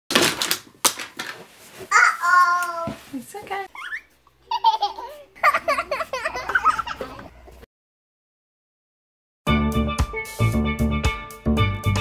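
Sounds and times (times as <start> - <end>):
child's voice: 1.9 - 3.0.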